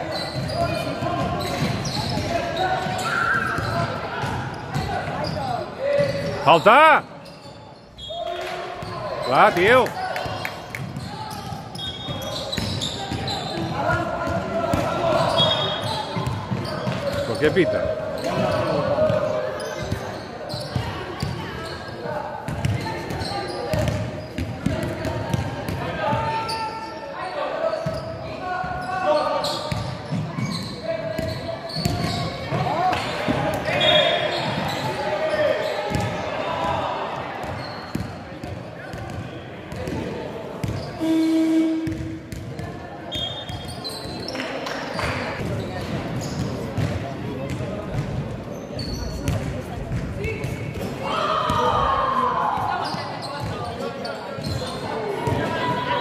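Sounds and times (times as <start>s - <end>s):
players shouting in echoing hall: 0.0s - 7.4s, 8.0s - 47.9s, 50.2s - 56.0s.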